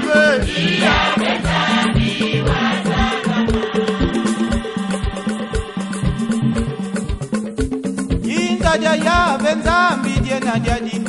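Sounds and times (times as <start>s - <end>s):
choir singing gospel song: 0.0s - 7.5s
steady drum beat: 0.0s - 11.0s
stepping bass line: 0.0s - 11.0s.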